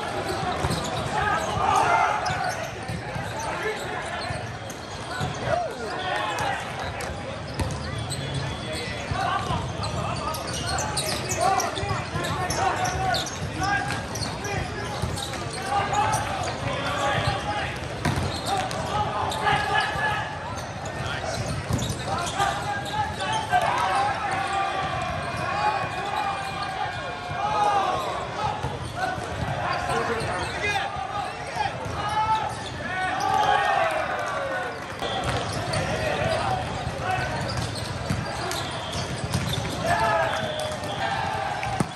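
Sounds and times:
din of many voices: 0.0s - 41.9s
players shouting: 0.0s - 41.9s.

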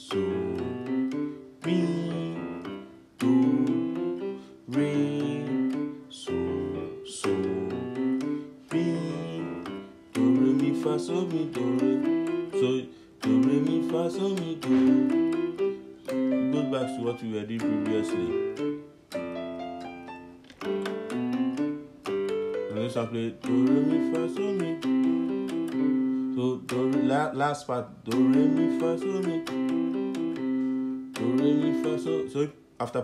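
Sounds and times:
piano scale exercise: 0.0s - 33.0s.

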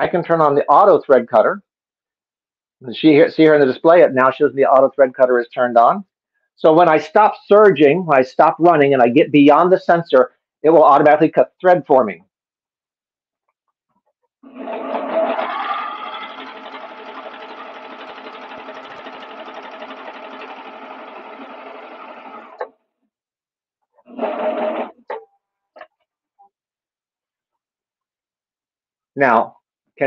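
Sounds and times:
serger sewing machine running: 14.5s - 22.7s, 24.1s - 25.0s.

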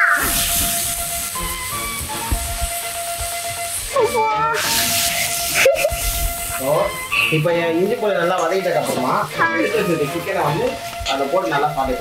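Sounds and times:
food hissing in a pan: 0.0s - 12.0s.

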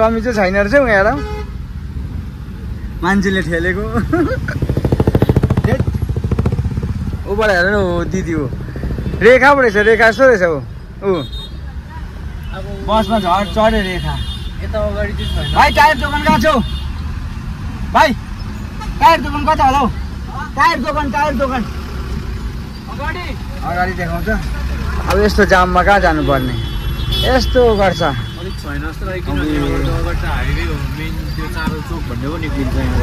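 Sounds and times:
street traffic rumble: 0.0s - 33.0s
tyres on road: 0.0s - 33.0s
car engine rumble: 1.6s - 11.0s.

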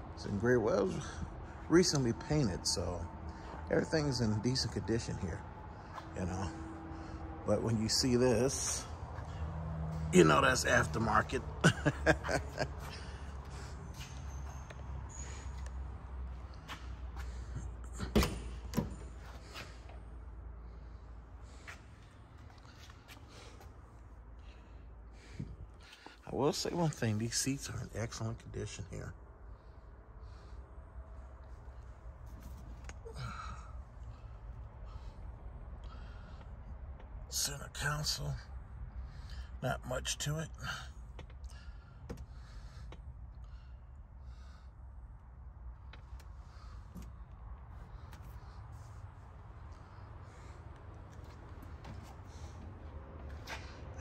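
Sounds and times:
steady low hum: 0.0s - 54.0s
low steady rumble: 18.5s - 54.0s.

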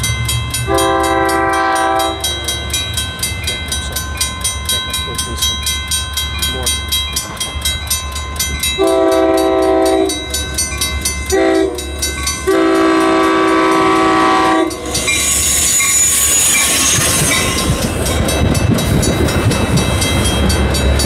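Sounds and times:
crossing bell dinging: 0.0s - 21.0s
train wheels on rails: 0.0s - 21.0s
train air horn: 0.7s - 2.3s, 8.8s - 10.2s, 11.3s - 14.9s.

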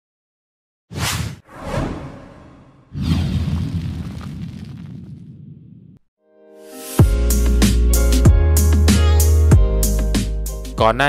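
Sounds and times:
whoosh sound effect: 0.9s - 3.6s.

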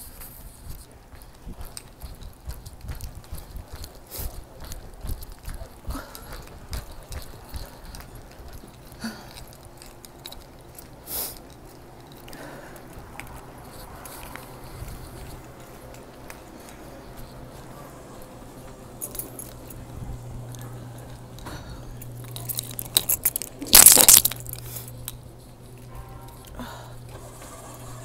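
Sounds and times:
footsteps: 0.0s - 28.0s
steady low hum: 0.0s - 28.0s.

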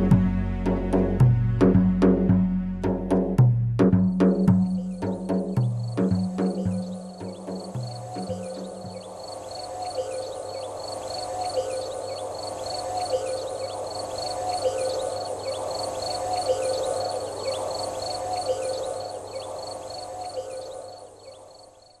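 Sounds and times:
high chirps: 4.1s - 17.7s
lower animal calls: 4.5s - 21.0s.

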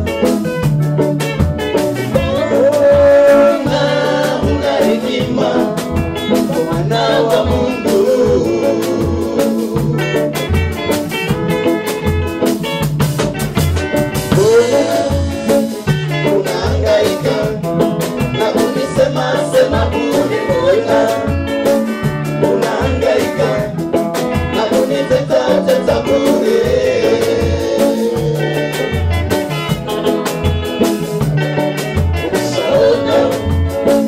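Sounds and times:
bass line and drums: 0.0s - 34.0s
choir singing gospel song: 2.0s - 10.5s, 14.3s - 29.6s, 31.8s - 34.0s.

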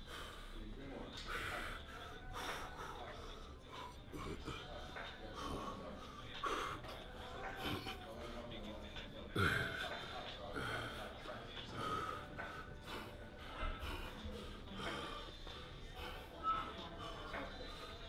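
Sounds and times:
man breathing forcefully: 11.7s - 16.3s.

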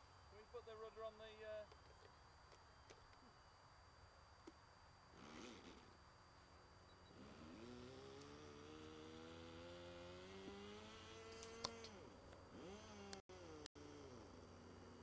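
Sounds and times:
model plane motor in flight: 5.2s - 5.9s, 7.0s - 15.0s.

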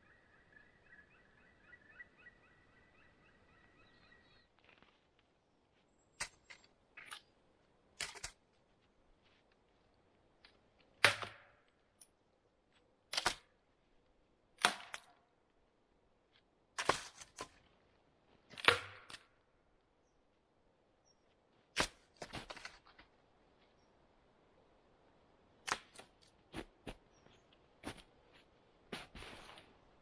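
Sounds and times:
branches snapping: 25.6s - 26.4s.

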